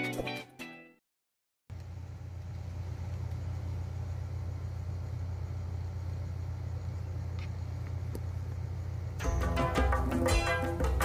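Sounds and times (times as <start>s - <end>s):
small click: 7.4s - 8.3s.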